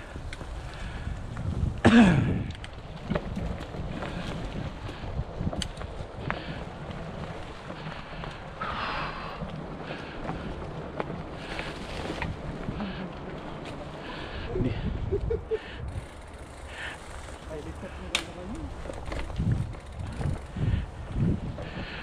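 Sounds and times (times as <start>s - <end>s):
wind on microphone: 0.0s - 13.3s, 14.2s - 16.2s, 18.6s - 22.0s
bike rattles and clicks: 0.0s - 22.0s
bike tyres on leafy dirt: 0.0s - 22.0s
person laughing: 14.6s - 15.8s.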